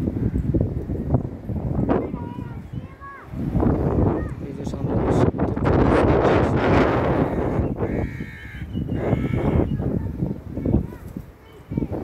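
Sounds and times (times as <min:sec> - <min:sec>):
crow cawing: 0:07.1 - 0:09.8.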